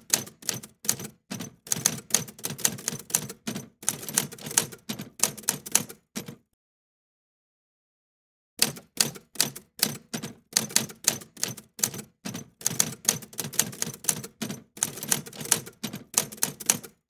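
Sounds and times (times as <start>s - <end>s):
typewriter key strikes: 0.0s - 6.4s, 8.6s - 17.0s.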